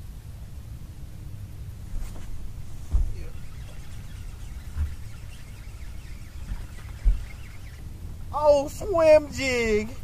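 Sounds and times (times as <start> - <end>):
wind rumble on microphone: 0.0 - 8.4
dull thumps: 1.9 - 7.8.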